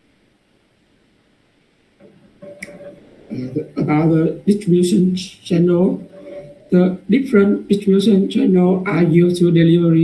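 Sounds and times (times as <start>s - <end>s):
man saying uh: 3.3s - 10.0s.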